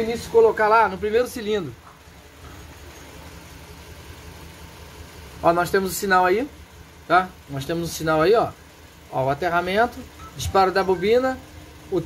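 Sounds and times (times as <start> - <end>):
misfiring car engine idling: 0.0 - 12.0.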